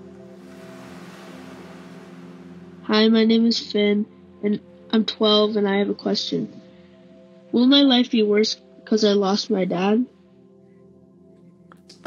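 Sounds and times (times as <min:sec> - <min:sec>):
ocean surf: 0:00.0 - 0:04.3
quiet music with held chord: 0:00.0 - 0:12.0.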